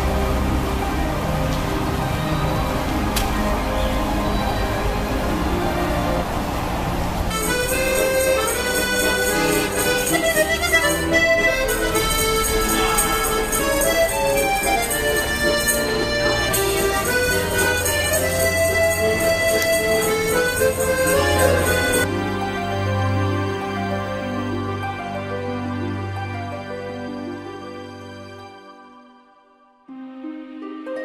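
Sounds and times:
accordion playing a tune: 0:00.0 - 0:28.7
noisy street ambience: 0:00.0 - 0:28.9.

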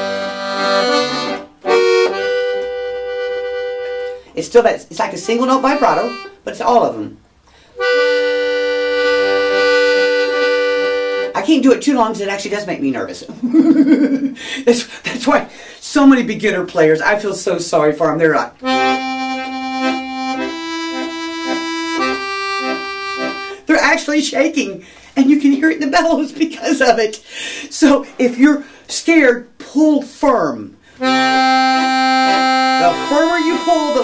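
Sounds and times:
accordion holding a wavering chord: 0:00.0 - 0:04.3, 0:05.2 - 0:06.4, 0:07.8 - 0:11.4, 0:18.6 - 0:23.6, 0:31.0 - 0:34.0.

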